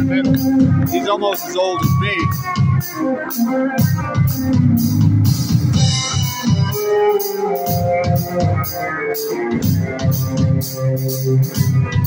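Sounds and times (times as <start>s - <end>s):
bass guitar: 0.0s - 12.0s
drum kit beat: 0.0s - 12.0s
electric guitar: 0.0s - 12.0s.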